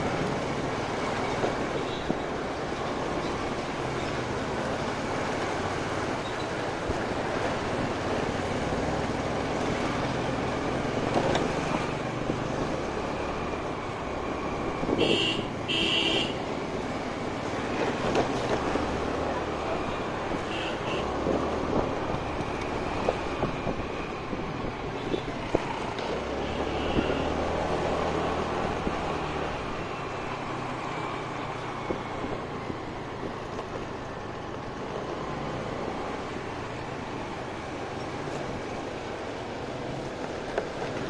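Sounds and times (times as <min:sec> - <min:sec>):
road noise: 0:00.0 - 0:41.0
wind rushing over microphone: 0:21.1 - 0:29.8.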